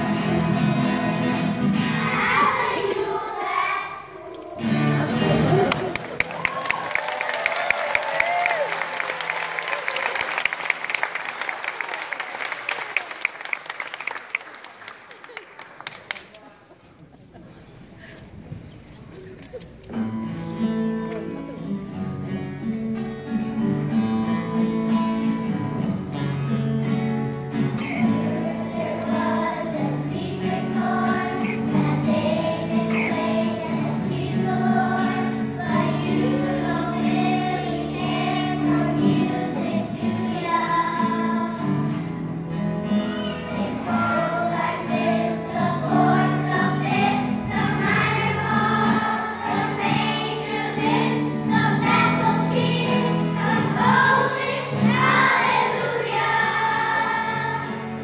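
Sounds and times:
children's choir singing: 0.0 - 10.4, 27.2 - 58.0.

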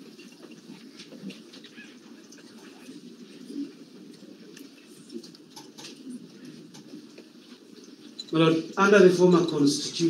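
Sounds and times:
faint low murmur: 0.0 - 10.0.

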